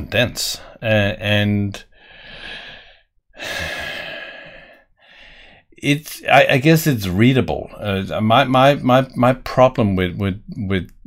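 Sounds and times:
man breathing out: 2.0s - 5.7s.

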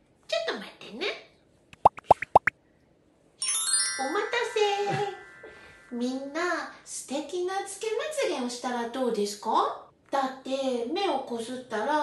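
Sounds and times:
cartoon rising bloop plops: 1.8s - 2.5s.

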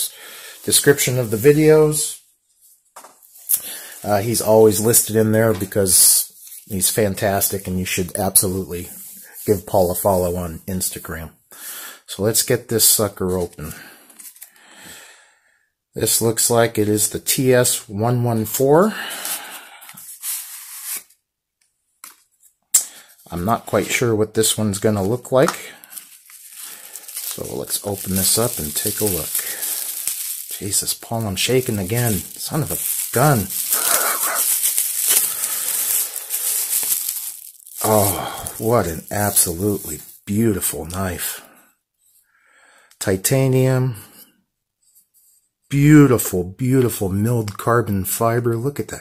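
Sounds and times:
bubble wrap crinkling: 6.3s - 7.6s, 25.4s - 40.6s.

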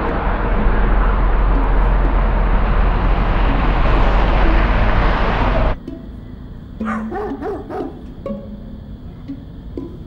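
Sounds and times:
dog barking: 6.8s - 8.0s.

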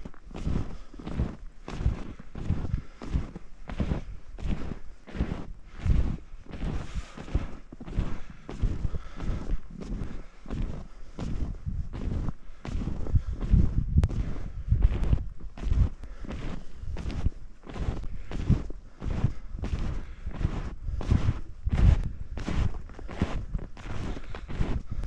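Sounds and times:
snowshoe footsteps in snow: 0.0s - 25.0s
wind rumbling on microphone: 0.0s - 25.0s.

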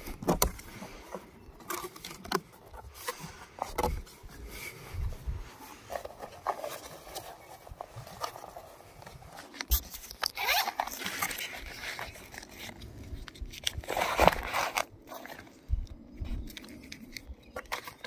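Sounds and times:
cardboard and foam scraping: 0.0s - 15.6s
rubber cable pulled out: 0.0s - 15.6s.

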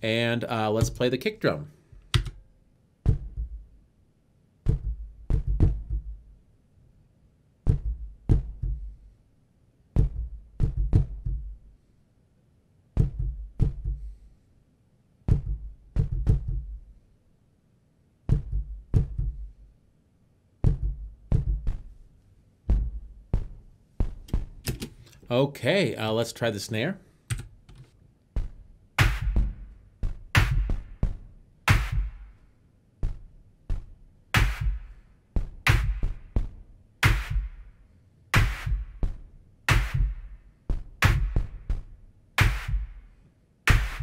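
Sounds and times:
synthesized kick drum hits: 3.0s - 3.8s, 4.6s - 6.3s, 7.6s - 9.0s, 10.0s - 11.6s, 13.0s - 14.1s, 15.3s - 16.9s, 18.3s - 19.6s, 20.6s - 22.0s, 22.7s - 24.6s, 28.4s - 32.4s, 33.0s - 37.7s, 38.4s - 43.1s, 43.7s - 44.0s.

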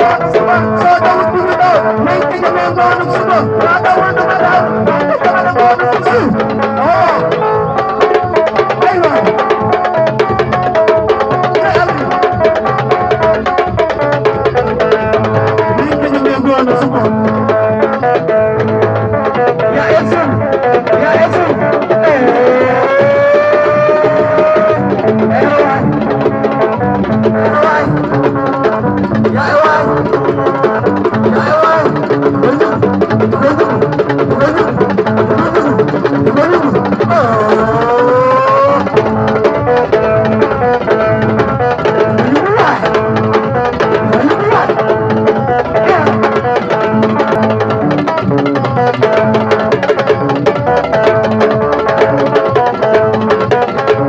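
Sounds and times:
man singing: 0.0s - 7.9s, 11.5s - 12.3s, 15.6s - 18.0s, 19.5s - 41.0s, 42.0s - 43.0s, 43.9s - 47.4s
held instrument notes: 0.0s - 54.0s
steady drumming: 0.0s - 54.0s.

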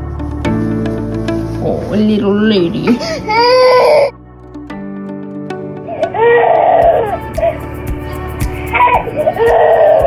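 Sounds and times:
background music held notes: 0.0s - 10.0s
baby whining cry: 3.0s - 4.2s, 5.9s - 7.6s, 8.8s - 10.0s.

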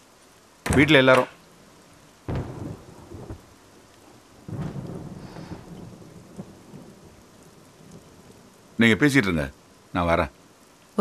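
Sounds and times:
steady rain: 0.0s - 11.0s
thunder rumbling: 0.6s - 9.6s.

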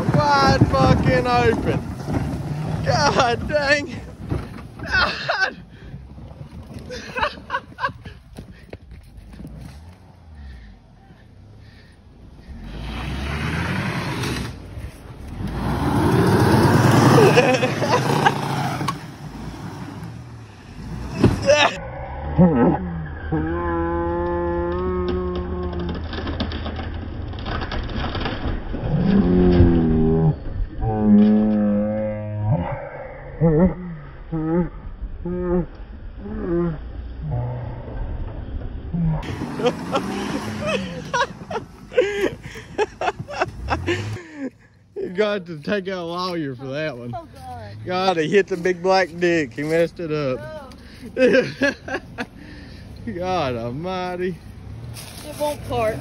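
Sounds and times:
tyres rushing on dirt: 0.0s - 21.8s, 39.2s - 56.0s
car engine revving: 12.2s - 21.6s, 39.2s - 44.4s.

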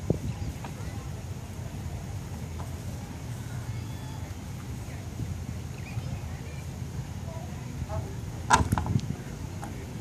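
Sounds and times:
wind rumble on microphone: 0.0s - 1.3s, 4.4s - 10.0s.

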